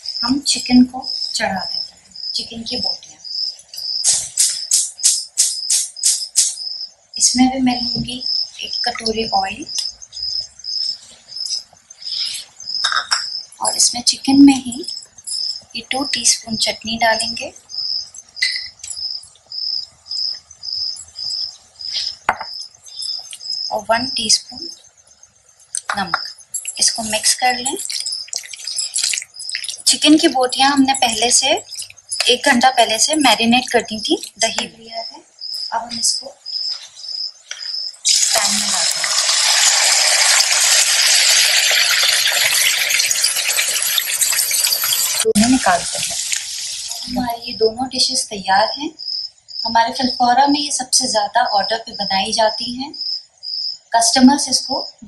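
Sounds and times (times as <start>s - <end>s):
cricket chirping: 0.0s - 55.0s
metal spoon clinking on jar: 25.8s - 30.0s
chicken sizzling in hot oil: 27.8s - 30.0s, 38.0s - 47.1s.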